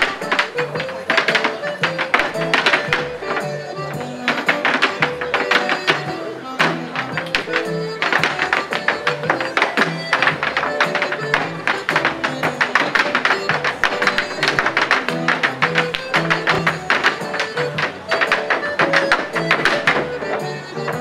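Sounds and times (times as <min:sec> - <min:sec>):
dance music from loudspeaker: 0:00.0 - 0:21.0
hard shoes stamping on wood: 0:00.0 - 0:21.0.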